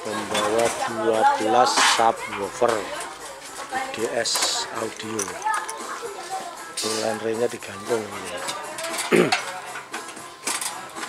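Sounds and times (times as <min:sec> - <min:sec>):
metal clinks and knocks: 0:01.7 - 0:06.1, 0:08.3 - 0:10.8.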